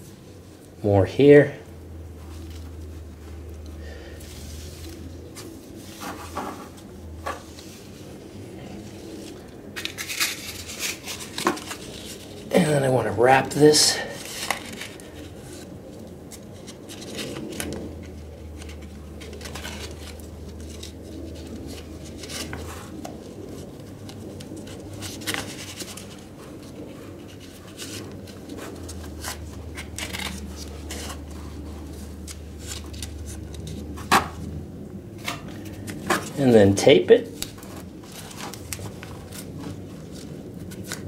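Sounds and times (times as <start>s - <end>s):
low steady hum: 0.0s - 41.0s
paper rustling and scratching: 2.2s - 41.0s.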